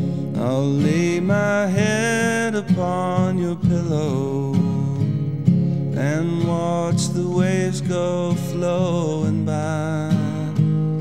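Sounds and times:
strummed acoustic guitar: 0.0 - 11.0
man singing: 0.2 - 5.3, 5.9 - 11.0.

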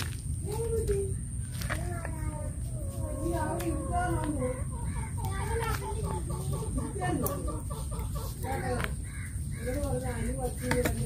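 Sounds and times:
faint voices: 0.4 - 11.0
birds and poultry calling: 1.1 - 11.0.

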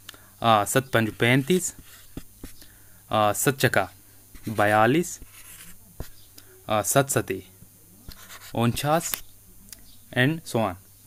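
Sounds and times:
person speaking: 0.4 - 10.8
stylus scratching on tablet screen: 0.6 - 2.6, 4.3 - 6.3, 8.0 - 9.3.

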